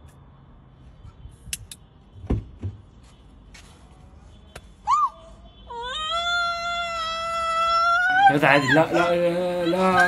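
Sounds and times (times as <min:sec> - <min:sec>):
woman yelping: 0:05.8 - 0:09.0
woman wailing: 0:05.8 - 0:10.0.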